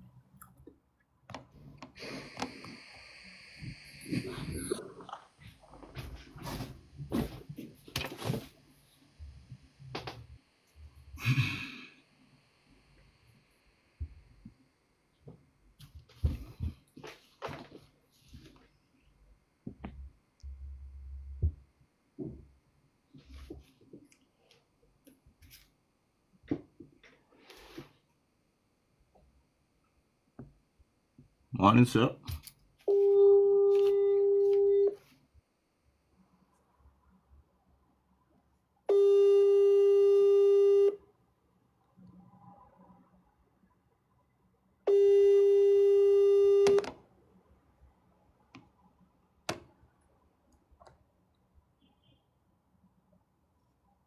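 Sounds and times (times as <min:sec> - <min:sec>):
person sighing: 0:11.2 - 0:12.0.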